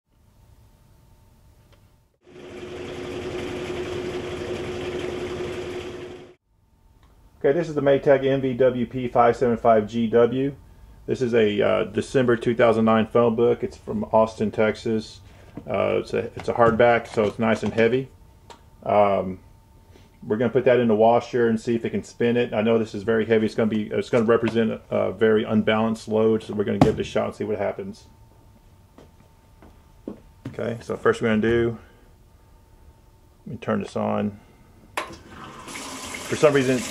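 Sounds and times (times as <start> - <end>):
faint background hum: 0.2 - 2.2, 6.5 - 36.9
washing machine spinning: 2.2 - 6.4, 35.0 - 36.9.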